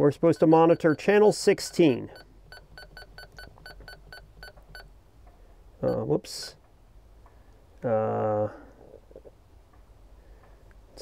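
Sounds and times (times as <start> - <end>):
radio key beeps: 0.2 - 4.9, 5.8 - 6.6.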